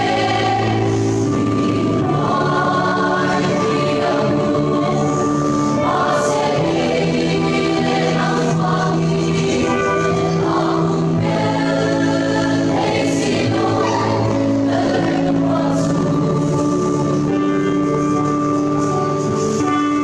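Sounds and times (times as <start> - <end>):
choir singing a hymn: 0.0 - 19.9.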